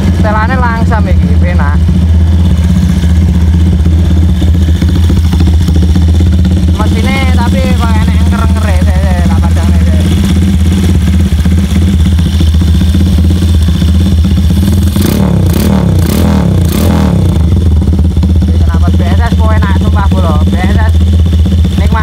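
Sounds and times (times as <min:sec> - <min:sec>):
motorcycle engine idling: 0:00.0 - 0:22.0.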